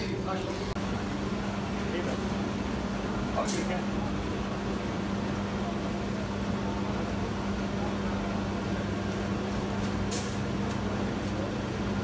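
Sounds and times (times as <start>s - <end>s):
machine and oven humming: 0.0s - 12.0s.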